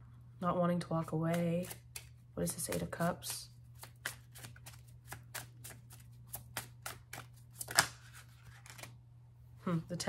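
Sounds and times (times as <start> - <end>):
cards being shuffled: 1.0 - 9.0
card snap: 6.4 - 8.0.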